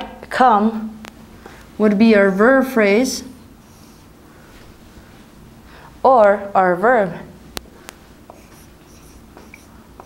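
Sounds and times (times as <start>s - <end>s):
marker squeak: 8.3s - 9.7s
marker scratching on whiteboard: 8.3s - 9.8s.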